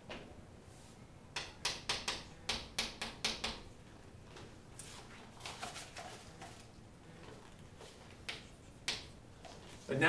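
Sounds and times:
chalk tapping and scraping on chalkboard: 7.8s - 9.9s.

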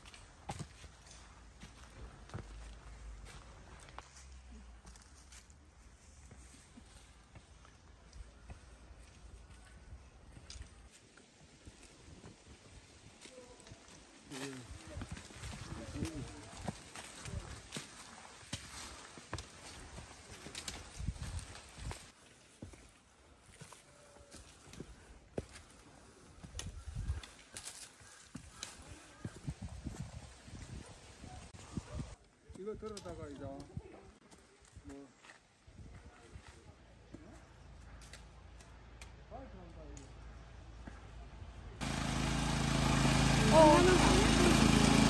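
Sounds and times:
footsteps on dry leaves and stone: 0.0s - 30.7s.

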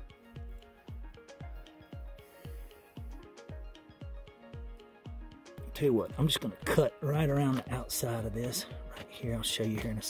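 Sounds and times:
background music with drum beat: 0.0s - 10.0s.

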